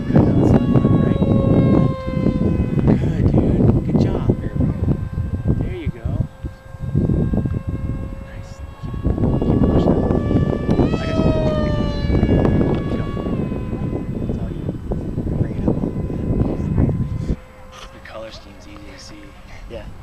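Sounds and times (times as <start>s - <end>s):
electric motor whining: 0.0s - 20.0s
low rumbling noise: 0.0s - 20.0s.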